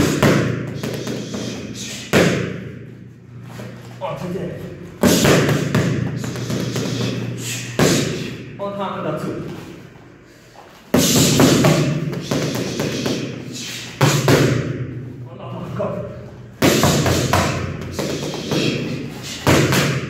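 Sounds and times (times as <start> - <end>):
boxing gloves hitting pads: 0.0 - 2.8, 5.0 - 7.2, 7.8 - 8.3, 10.9 - 13.4, 14.0 - 14.9, 16.6 - 20.0.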